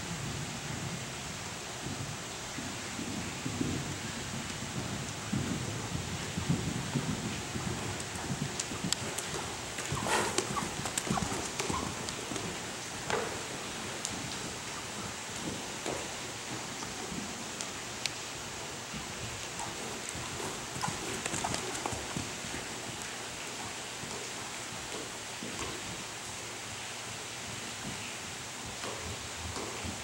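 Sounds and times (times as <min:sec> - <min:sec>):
steady hiss: 0:00.0 - 0:30.0
horse hoofbeats on soft footing: 0:01.7 - 0:30.0.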